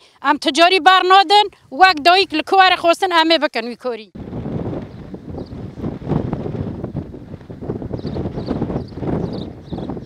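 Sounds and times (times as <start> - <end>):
wind rumbling on microphone: 4.2 - 10.0.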